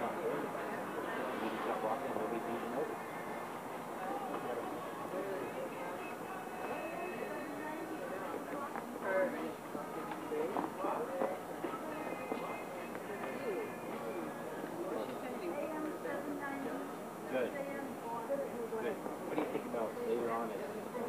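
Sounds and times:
people talking indistinctly: 0.0 - 21.0.

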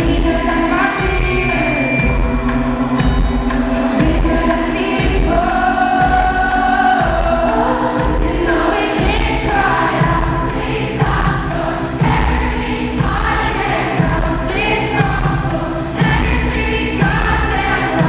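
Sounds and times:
live pop music with heavy bass: 0.0 - 18.0
sustained singing: 0.0 - 18.0.

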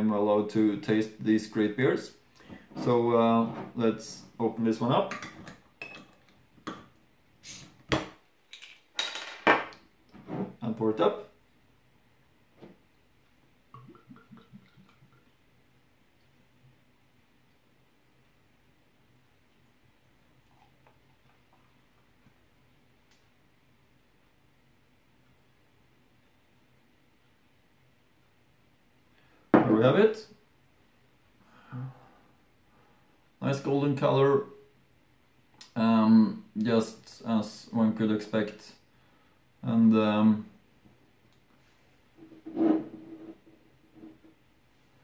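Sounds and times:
man speaking: 0.0 - 2.2, 2.8 - 5.1, 10.6 - 11.3, 35.8 - 38.8, 39.6 - 40.5.

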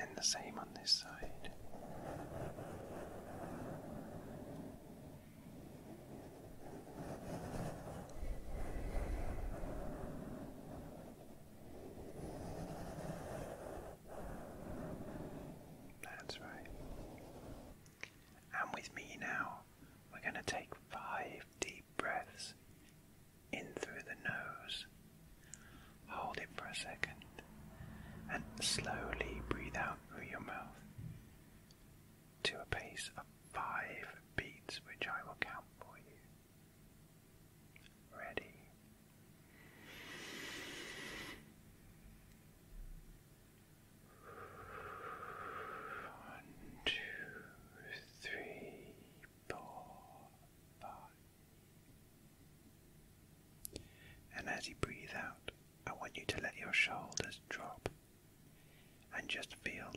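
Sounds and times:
person whispering: 0.0 - 2.4, 16.0 - 17.6, 18.4 - 22.6, 23.6 - 24.9, 26.1 - 27.5, 28.2 - 30.8, 32.4 - 36.3, 38.1 - 38.8, 44.1 - 51.2, 54.3 - 57.9, 59.1 - 59.9
brush on microphone windscreen: 1.1 - 4.8, 5.7 - 15.6.

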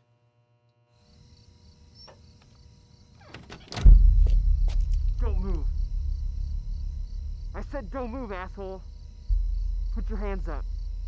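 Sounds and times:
loud low rumble: 3.8 - 11.0.

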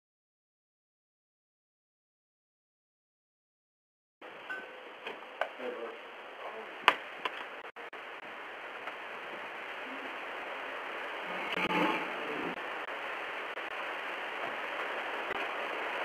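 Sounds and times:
steady hiss: 4.2 - 16.0.

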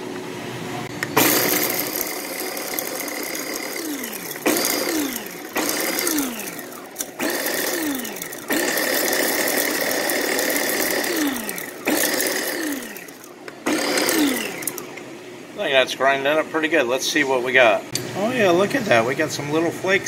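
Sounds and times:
electric food chopper whirring: 1.0 - 15.0.

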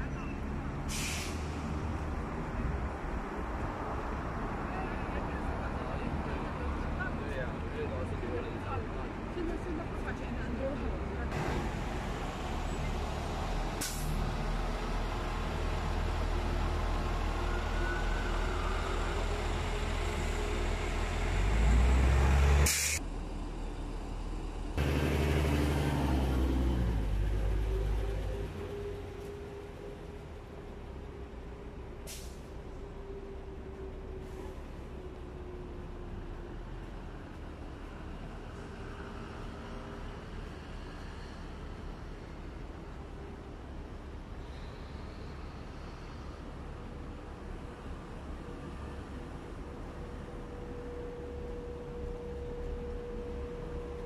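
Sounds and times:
city street rumble: 0.0 - 54.0
sharp air hiss: 0.9 - 1.7, 13.8 - 14.2, 22.6 - 23.0.

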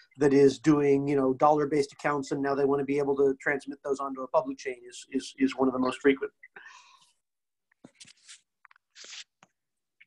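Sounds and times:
scratchy noises: 7.9 - 9.4.

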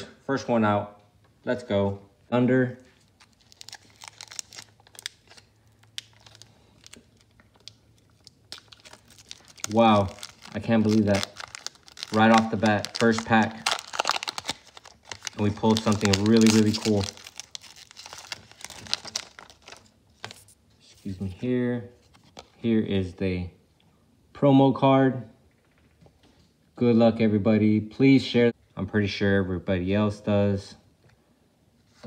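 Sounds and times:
foil wrapper crinkling: 3.0 - 20.5.

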